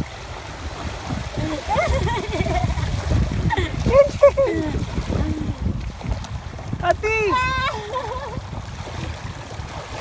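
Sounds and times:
bare feet splashing in water: 0.0s - 10.0s.

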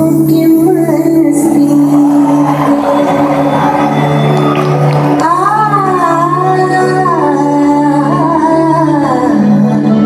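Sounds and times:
keyboard chords: 0.0s - 10.0s
audience noise: 1.0s - 7.5s
live band music: 1.0s - 8.1s.

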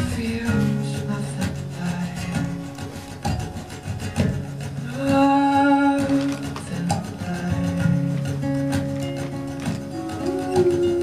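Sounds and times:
acoustic guitar music: 0.0s - 11.0s
scratchy percussive guitar strokes: 0.0s - 11.0s.

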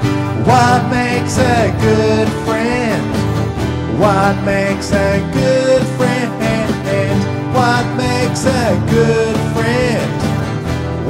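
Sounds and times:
acoustic guitar strumming: 0.0s - 11.0s
man singing children's song: 0.3s - 3.3s, 3.9s - 10.4s.

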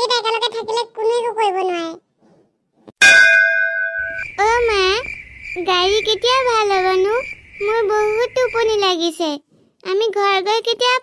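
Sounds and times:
high-pitched cartoon voice speaking: 0.0s - 2.0s
metallic ding sound effect: 3.0s - 4.3s
crickets chirring: 3.8s - 9.0s.

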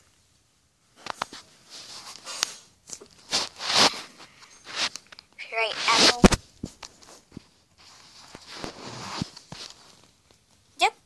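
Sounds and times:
soft rustle: 0.0s - 10.8s.

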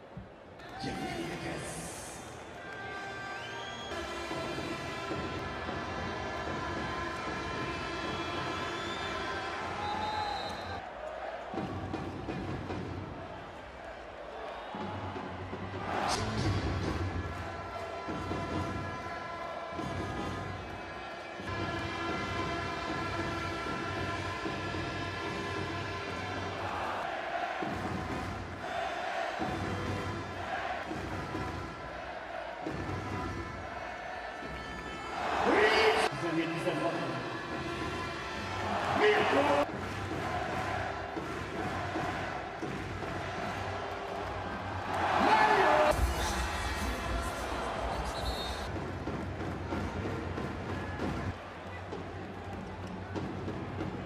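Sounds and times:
arena crowd noise: 0.0s - 54.0s
background music: 0.0s - 54.0s.

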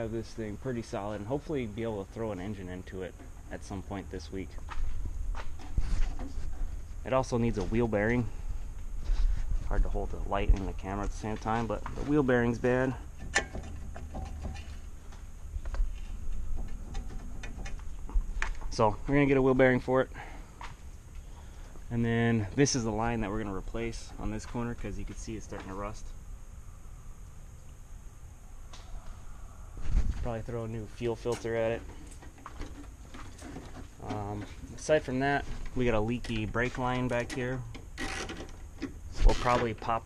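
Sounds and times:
faint clicks and rustles: 4.4s - 19.1s, 29.8s - 40.0s.

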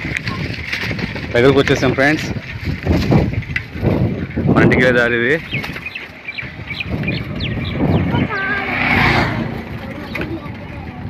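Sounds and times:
indistinct voices: 4.5s - 11.0s.

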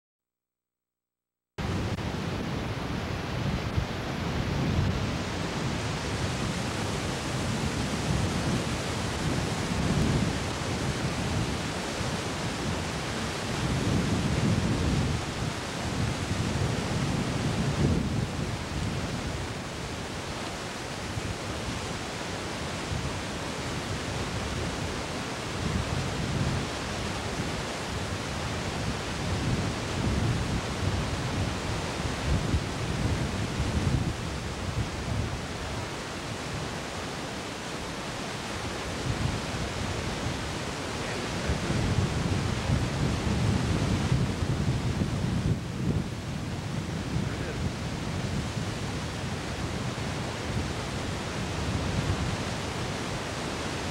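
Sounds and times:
wind buffeting microphone: 1.6s - 53.9s.

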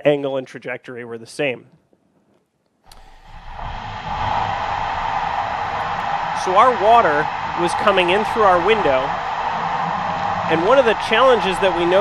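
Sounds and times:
fire hose water rushing: 3.4s - 12.0s.

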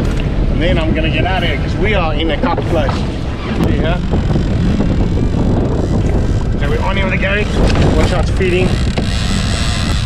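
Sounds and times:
wind buffeting microphone: 0.0s - 10.0s
jet ski engine: 2.6s - 10.0s.

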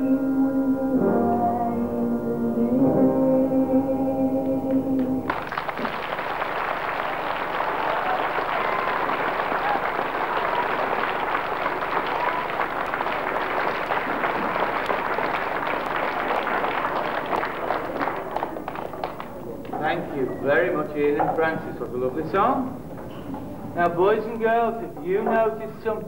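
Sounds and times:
music: 0.0s - 5.6s
audience clapping: 4.7s - 20.2s.

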